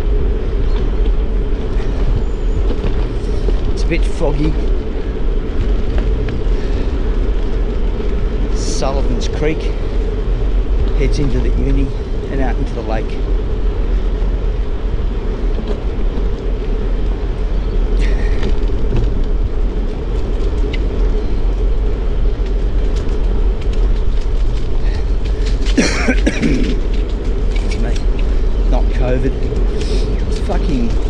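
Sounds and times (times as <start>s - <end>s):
bicycle tyre rumble on pavement: 0.0s - 31.0s
wind buffeting microphone: 0.0s - 31.0s.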